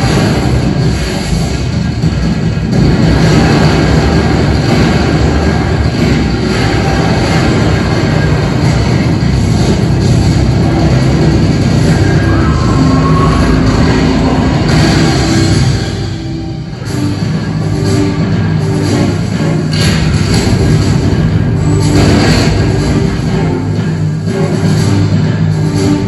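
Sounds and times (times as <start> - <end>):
film music: 0.0 - 26.0
roller coaster cars rumbling: 0.0 - 26.0.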